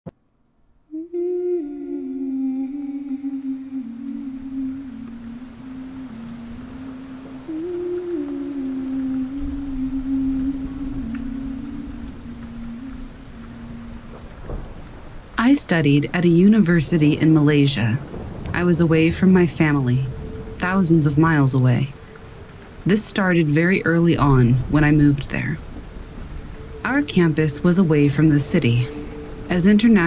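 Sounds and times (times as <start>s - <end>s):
faint hiss of rain: 0.6s - 30.0s
person humming a slow tune: 0.9s - 14.5s, 26.5s - 30.0s.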